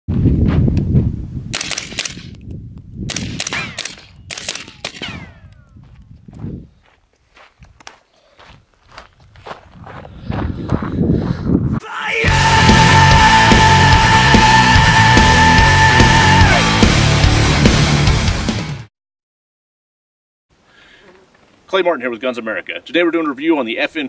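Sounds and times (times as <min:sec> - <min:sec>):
rifle firing rapid shots: 0:01.6 - 0:02.3, 0:03.1 - 0:05.5.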